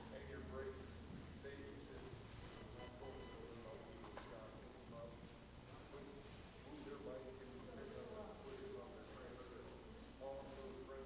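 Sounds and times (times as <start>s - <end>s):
faint voices talking: 0.0s - 11.0s
low steady hum: 0.1s - 10.9s.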